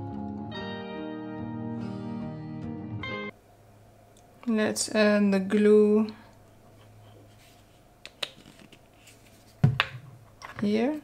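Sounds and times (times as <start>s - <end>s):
plastic bottle knocking on wood: 9.6s - 10.0s.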